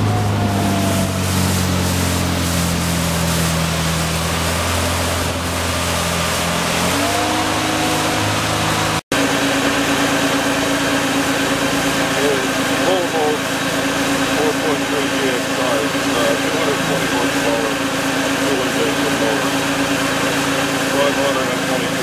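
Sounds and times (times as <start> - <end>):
boat engine idling: 0.0 - 22.0
boat engine running: 0.0 - 22.0
water rushing past hull: 0.0 - 22.0.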